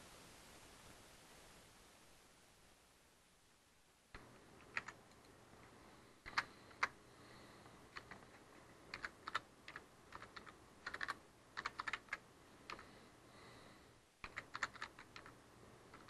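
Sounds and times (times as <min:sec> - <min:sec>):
faint computer keyboard typing: 0:04.1 - 0:13.0, 0:14.2 - 0:16.0.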